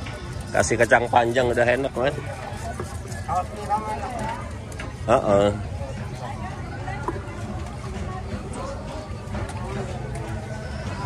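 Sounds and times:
faint voices talking: 0.0s - 11.0s
low market background hum: 0.0s - 11.0s.

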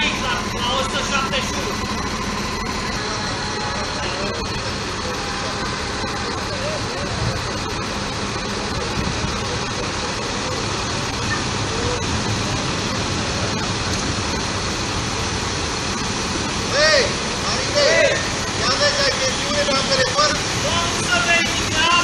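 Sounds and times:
constant hiss: 0.0s - 22.0s
road traffic: 0.0s - 22.0s
truck engine running: 0.0s - 22.0s.

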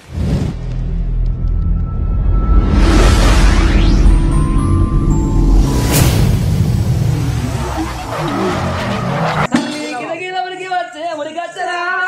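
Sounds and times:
rushing sweep sound effect: 0.0s - 9.4s
music: 1.3s - 8.0s.

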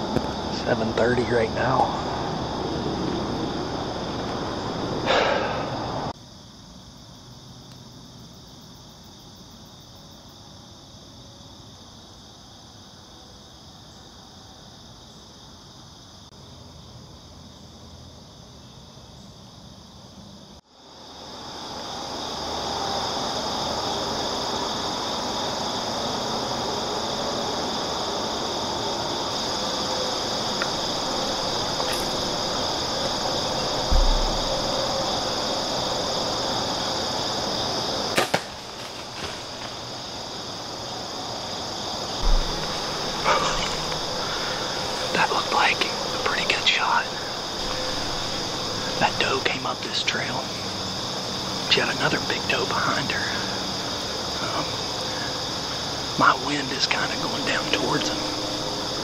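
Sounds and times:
crickets chirring: 0.0s - 59.0s
dull low thumps: 30.7s - 35.6s, 42.2s - 45.1s.

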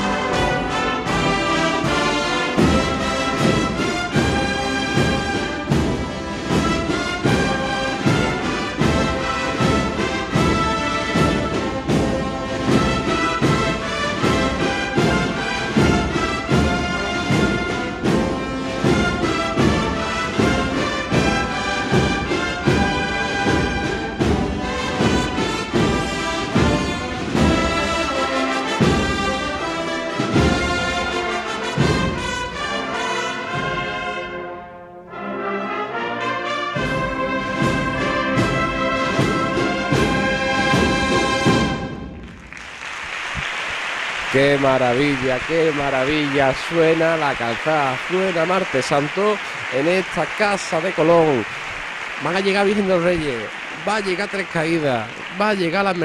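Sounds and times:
steady percussion beat: 0.0s - 34.0s, 36.8s - 56.0s
brass band playing march: 0.0s - 56.0s.

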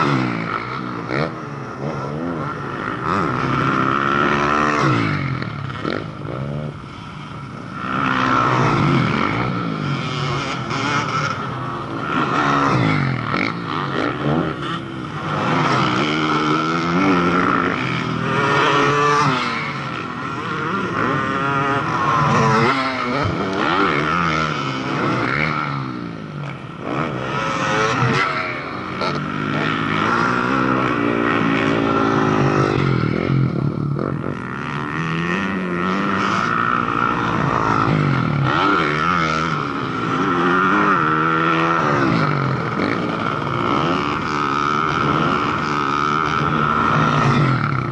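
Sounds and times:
dirt bike engines revving: 0.0s - 47.9s.

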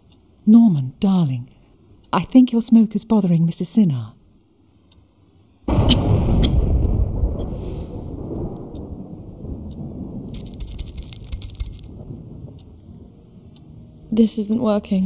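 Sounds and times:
loud deep rumble: 5.7s - 13.5s.

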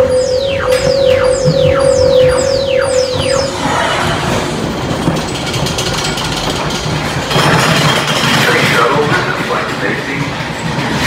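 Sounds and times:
falling electronic sweeps: 0.0s - 4.7s
roller coaster rumbling on track: 0.0s - 11.0s.

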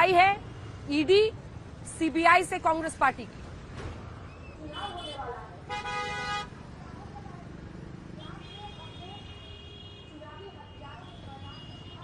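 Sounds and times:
vehicle horn: 4.8s - 6.5s.

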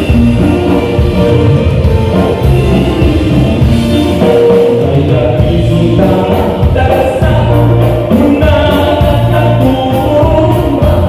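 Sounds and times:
congas: 0.0s - 11.0s
live band playing dance tune: 0.0s - 11.0s
person singing: 3.9s - 11.0s.

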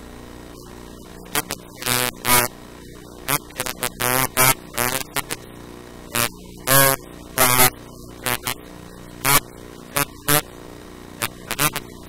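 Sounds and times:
steady electrical hum: 0.0s - 12.0s
distorted buzzy voice: 0.6s - 2.6s, 3.2s - 5.4s, 6.1s - 8.6s, 9.2s - 10.5s, 11.2s - 12.0s.

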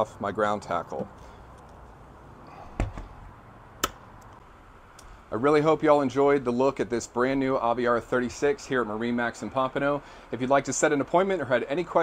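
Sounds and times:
hatch lid dull thump: 2.8s - 3.2s.

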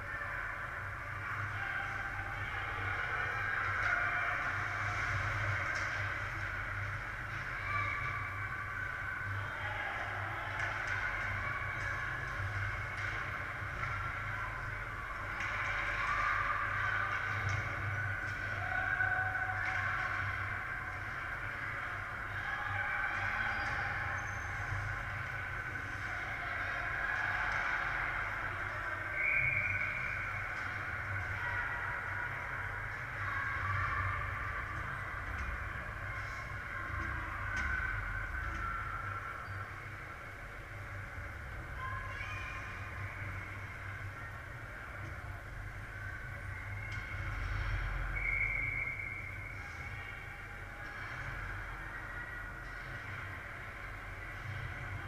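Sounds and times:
voices echoing in arena: 0.0s - 55.0s.

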